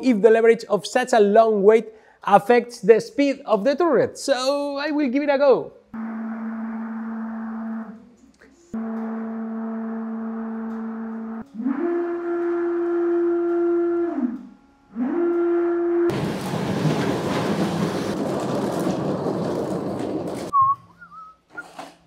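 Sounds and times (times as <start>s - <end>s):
stepper motor whine: 8.8s - 16.1s
loud rushing noise: 16.1s - 20.5s.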